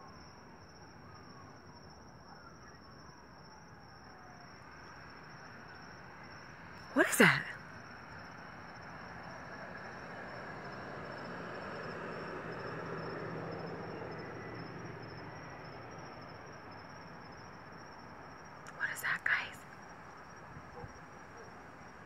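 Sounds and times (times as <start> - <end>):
high insect trill: 0.0 - 22.0
distant passing vehicle: 9.4 - 16.1.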